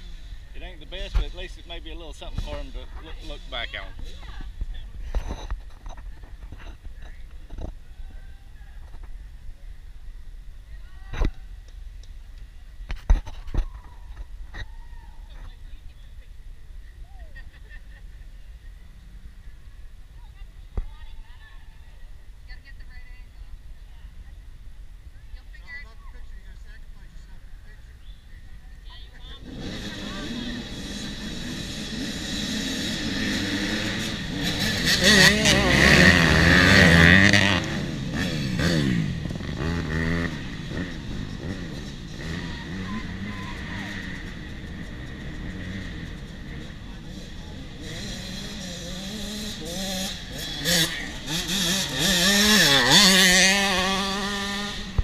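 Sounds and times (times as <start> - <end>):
dirt bike engines revving: 0.0 - 12.9, 13.7 - 55.0.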